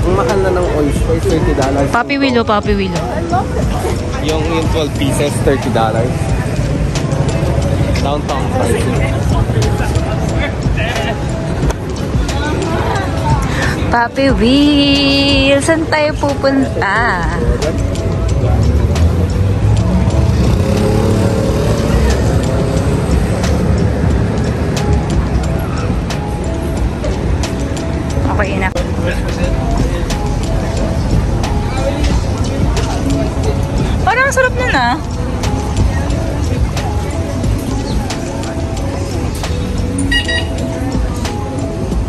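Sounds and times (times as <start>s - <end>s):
background music: 0.0s - 42.0s
cars passing: 0.0s - 42.0s
street traffic rumble: 0.0s - 42.0s.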